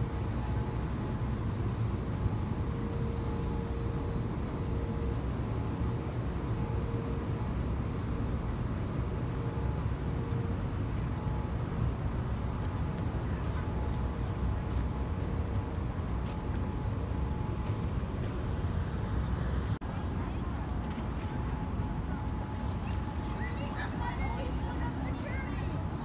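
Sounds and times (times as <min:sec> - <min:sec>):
city street traffic rumble: 0:00.0 - 0:26.0.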